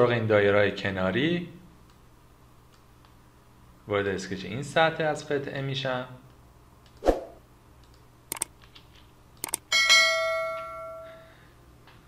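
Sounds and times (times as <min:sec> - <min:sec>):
sharp clicks: 0:07.8 - 0:09.7
bell-like chime: 0:09.7 - 0:11.3.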